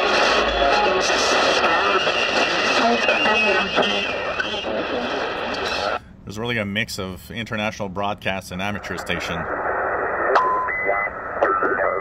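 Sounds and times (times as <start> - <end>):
radio hiss and static: 0.0 - 6.0, 8.5 - 12.0
faint garbled radio voice: 10.7 - 12.0.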